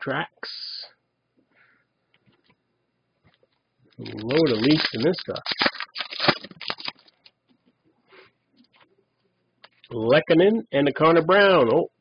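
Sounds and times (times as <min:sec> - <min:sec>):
cards being flipped through: 0:04.0 - 0:07.3.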